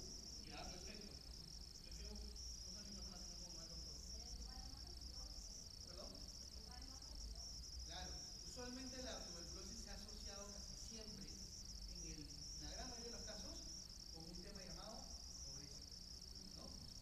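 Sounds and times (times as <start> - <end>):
steady high-pitched whine: 0.0 - 17.0.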